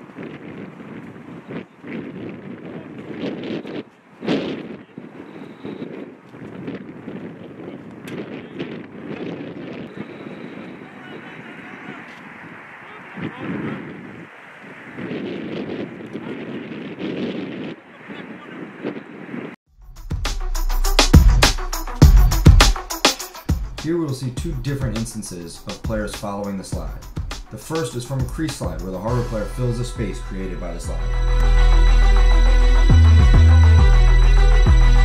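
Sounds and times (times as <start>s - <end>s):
wind buffeting microphone: 0.0s - 19.6s
players calling out: 9.9s - 14.6s.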